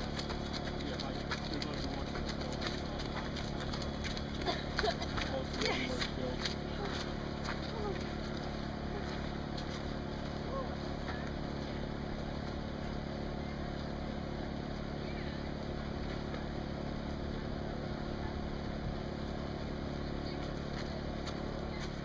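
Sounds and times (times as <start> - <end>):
faint voices: 0.0 - 9.6, 10.2 - 12.4, 14.6 - 22.0.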